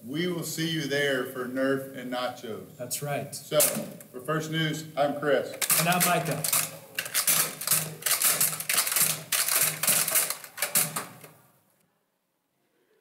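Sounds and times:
typewriter-style clacking: 3.6 - 4.0, 5.6 - 11.4.

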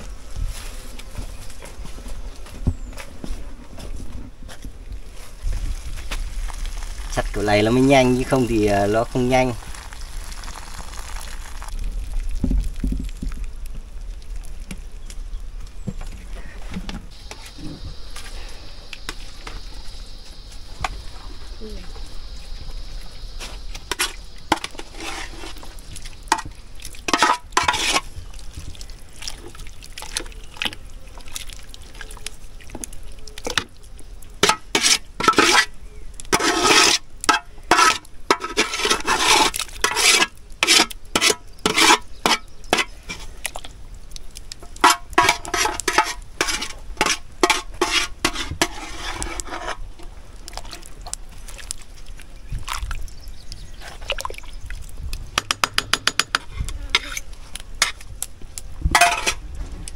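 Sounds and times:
liquid splashing: 5.6 - 13.6, 23.9 - 35.6, 50.3 - 55.0
metal ladle scraping pots: 23.8 - 28.1, 34.4 - 43.3, 44.8 - 50.8, 55.4 - 58.0, 58.9 - 59.4.

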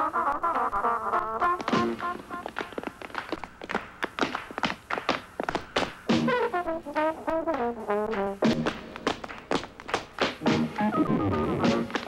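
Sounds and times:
shoes tapping on stage floor: 0.0 - 12.0.

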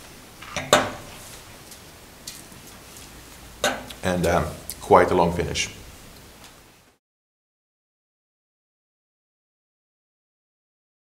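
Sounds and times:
wine glass clink: 3.6 - 3.9.

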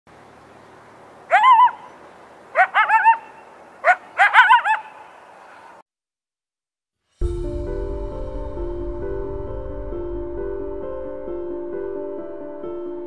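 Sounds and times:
animal yelping: 1.3 - 1.9, 2.6 - 5.0.

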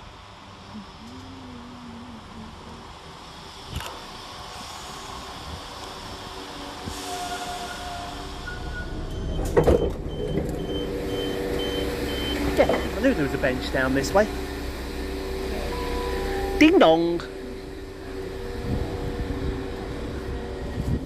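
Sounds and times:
diesel train running in: 0.0 - 21.0
high door beeps: 8.5 - 13.0
train door clunks: 8.7 - 10.8.

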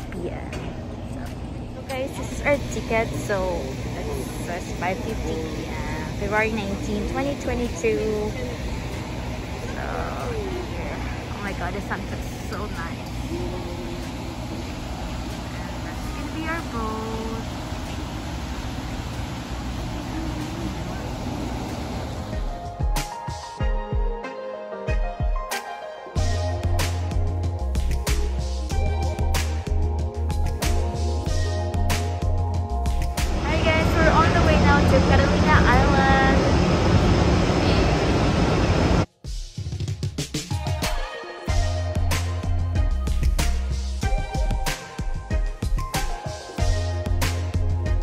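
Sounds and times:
music: 0.0 - 17.5, 19.7 - 36.4, 39.1 - 48.0
ferry engine: 0.0 - 22.7, 30.5 - 39.1
outdoor rumble and hiss: 0.0 - 22.7, 30.5 - 39.1.

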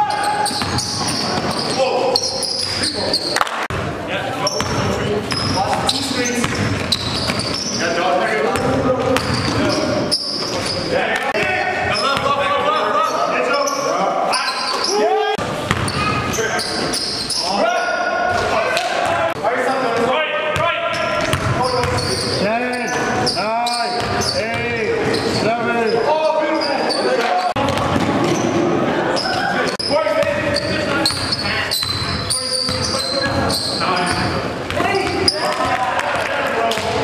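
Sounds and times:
echoing voices and shouts: 0.0 - 37.0
basketballs bouncing on wood floor: 0.5 - 1.8, 4.6 - 7.7, 8.5 - 9.8, 15.6 - 16.3, 20.9 - 22.2, 24.0 - 25.2, 27.6 - 28.6, 30.2 - 37.0.

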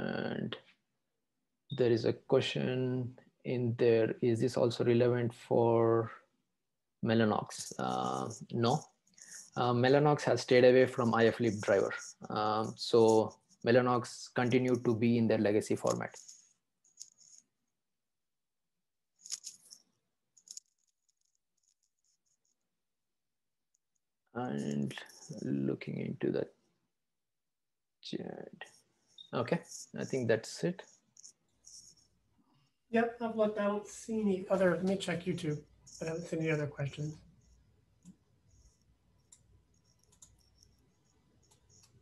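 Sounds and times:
computer mouse clicks: 37.4 - 42.0.

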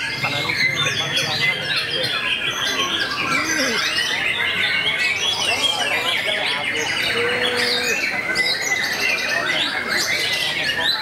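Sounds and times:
many caged songbirds singing: 0.0 - 11.0.

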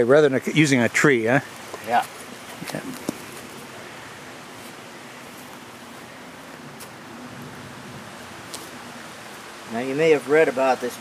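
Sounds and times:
creek water flowing: 0.0 - 11.0.

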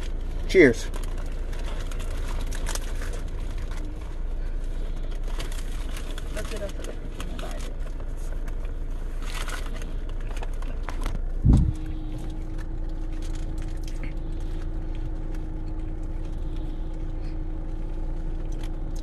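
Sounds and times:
car interior hum: 0.0 - 19.0
taco shell crunching: 0.0 - 19.0
steady hum tone: 7.0 - 19.0
loud low thump: 11.4 - 11.8.

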